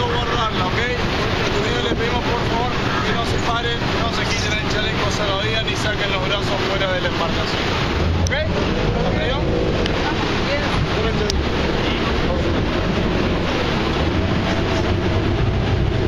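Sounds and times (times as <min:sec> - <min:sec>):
speedboat engine running: 0:00.0 - 0:16.0
wind over microphone: 0:00.0 - 0:16.0.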